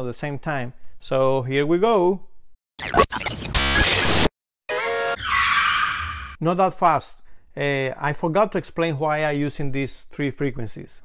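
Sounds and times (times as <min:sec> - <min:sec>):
tire skid sound effect: 0:04.7 - 0:06.4.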